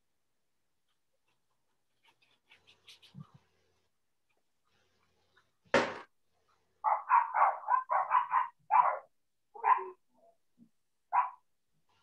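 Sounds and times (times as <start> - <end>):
dog barking: 6.8 - 10.0, 11.1 - 11.4.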